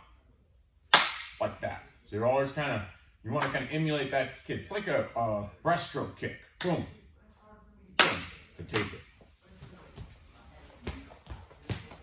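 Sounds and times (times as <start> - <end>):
bare footsteps on foam mats: 9.5 - 12.0.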